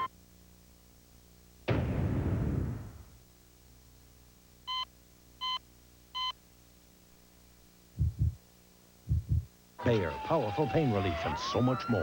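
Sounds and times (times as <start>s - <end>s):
faint steady hum: 0.0s - 12.0s
heartbeat thumps: 8.0s - 8.4s, 9.0s - 9.5s.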